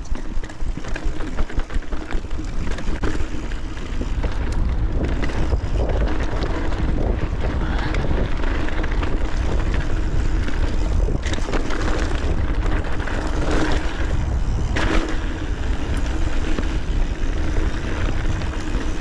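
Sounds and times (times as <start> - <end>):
bike rattling and clicking: 0.0 - 19.0
wind buffeting microphone: 0.0 - 19.0.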